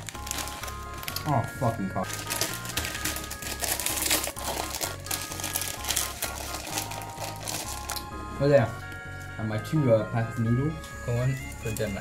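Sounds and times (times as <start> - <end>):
plastic wrappers crinkling: 0.0 - 8.1, 10.8 - 12.0
wrappers tearing open: 0.0 - 8.1
background music with bass line: 0.0 - 12.0.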